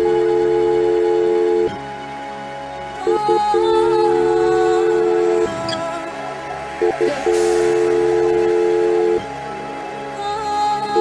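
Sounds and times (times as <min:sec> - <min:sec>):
dj mix music: 0:02.9 - 0:11.0.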